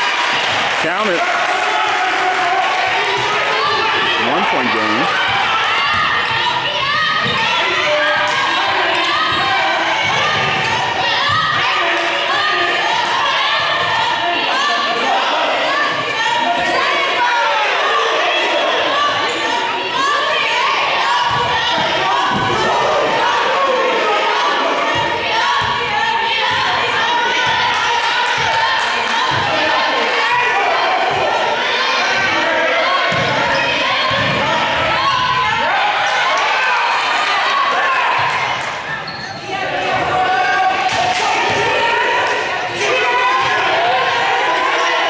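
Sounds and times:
people shouting and talking: 0:00.0 - 0:45.0.

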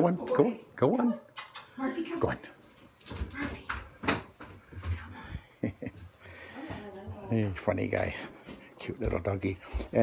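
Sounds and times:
footsteps on carpeted stairs: 0:02.6 - 0:10.0.

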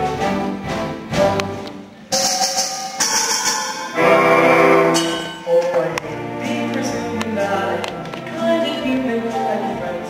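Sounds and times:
orchestra with brass: 0:00.0 - 0:10.0
loud sustained orchestral chord: 0:02.1 - 0:07.9.

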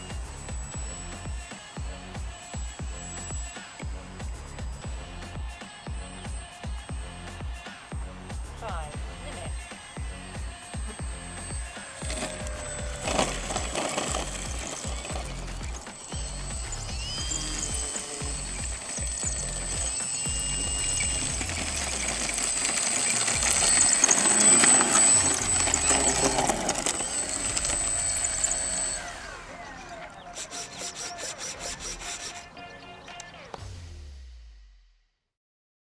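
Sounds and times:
electric motor whining: 0:00.0 - 0:33.7
background music: 0:00.0 - 0:34.6.

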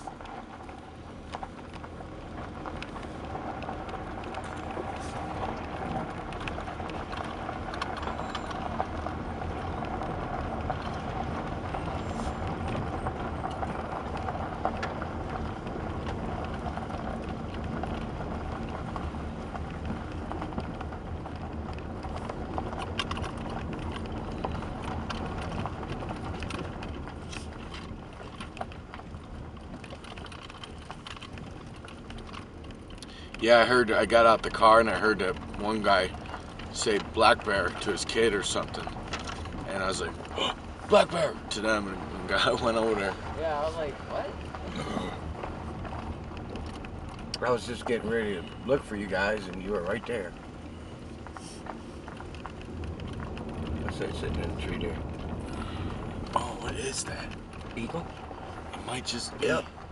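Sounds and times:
engine humming: 0:00.0 - 0:59.9
tyres rumbling on gravel: 0:00.0 - 0:59.9
clicks and rattles: 0:00.1 - 0:59.9.

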